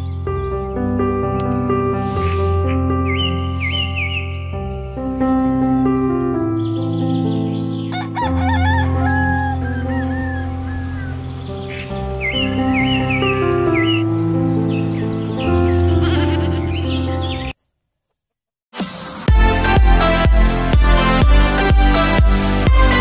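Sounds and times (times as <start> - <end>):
background music: 0.0 - 17.6, 18.8 - 23.0
rooster crowing: 7.9 - 11.3
electronic dance music: 18.8 - 23.0.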